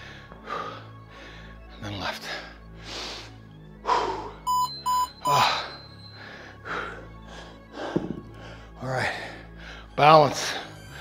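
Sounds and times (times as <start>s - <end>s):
loud breathing: 0.0s - 1.7s, 2.7s - 4.5s, 5.2s - 10.0s
background music: 0.0s - 11.0s
interval timer beeps: 4.5s - 6.2s.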